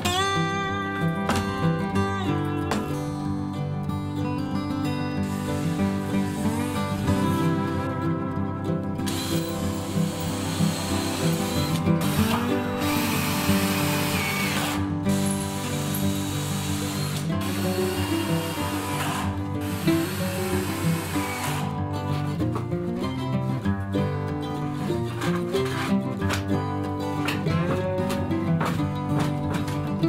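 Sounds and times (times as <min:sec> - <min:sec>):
background music: 0:00.0 - 0:30.0
drill driving screws into wood: 0:05.2 - 0:07.0, 0:09.0 - 0:21.8.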